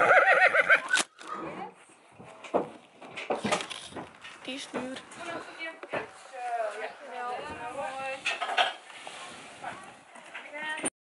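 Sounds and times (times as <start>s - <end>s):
wooden ramp clattering under footsteps: 2.2s - 6.2s.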